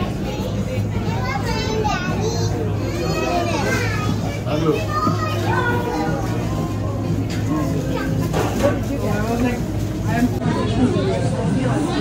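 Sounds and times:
children talking and calling out: 0.0s - 8.9s.

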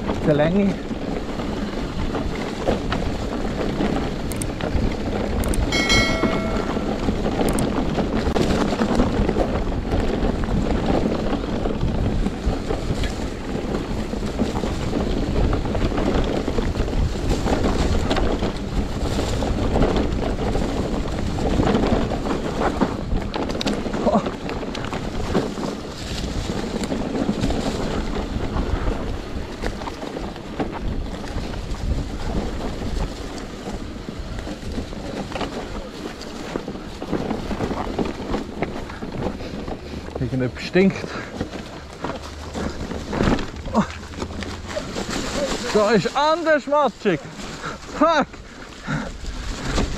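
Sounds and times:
bike knocks and rattles: 0.0s - 49.9s
bike tyres rolling on dirt: 0.0s - 49.9s
wind buffeting microphone: 0.0s - 49.9s.

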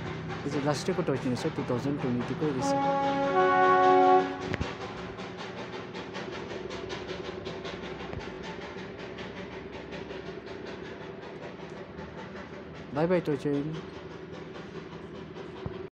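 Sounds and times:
steam locomotive chuffing: 0.0s - 15.9s
steam locomotive whistle: 2.6s - 4.6s.

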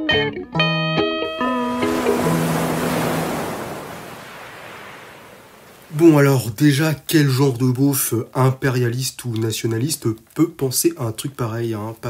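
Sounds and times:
guitar jingle: 0.0s - 3.9s
ocean waves on shore: 1.3s - 6.8s.

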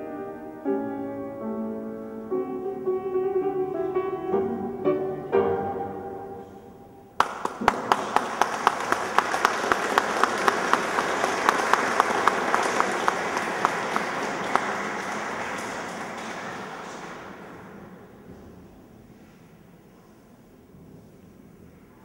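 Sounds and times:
piano chord: 0.0s - 7.1s
sharp claps close by: 7.2s - 17.5s
audience applause: 7.2s - 17.9s.

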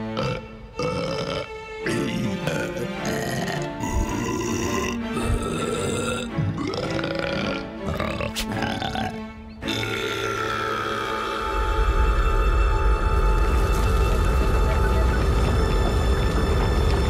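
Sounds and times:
background music: 0.0s - 17.0s
low dramatic music: 0.0s - 17.0s
cartoon character burping: 0.2s - 11.0s.

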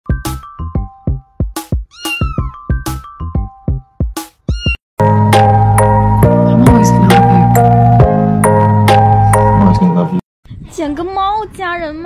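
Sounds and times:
cat meowing: 1.9s - 2.6s, 4.5s - 4.8s
electronic music with heavy drums: 5.0s - 10.1s.

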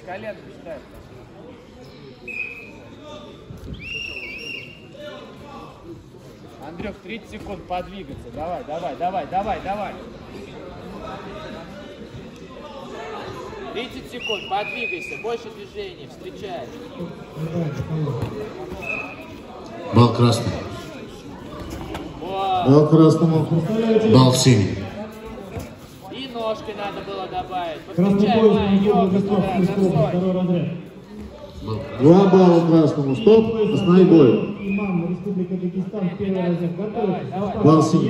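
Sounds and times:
murmur of voices echoing: 0.0s - 38.0s
men's voices: 22.2s - 30.9s.

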